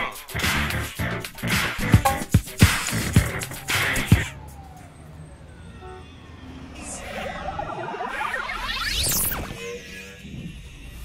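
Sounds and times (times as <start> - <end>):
electronic music: 0.0 - 4.6, 5.8 - 11.0
slow falling electronic tones: 3.7 - 11.0.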